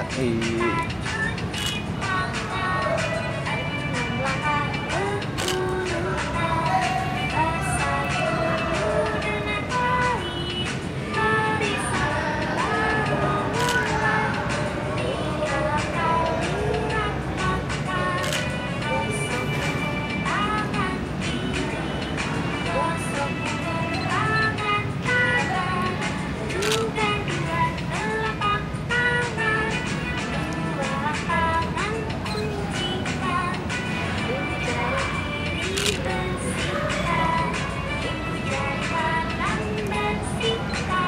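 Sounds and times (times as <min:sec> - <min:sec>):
children's song with beat: 0:00.0 - 0:41.0.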